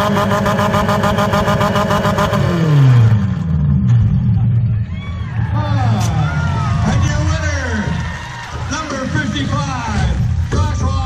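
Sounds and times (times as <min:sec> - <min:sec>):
car engine idling: 0:00.0 - 0:10.9.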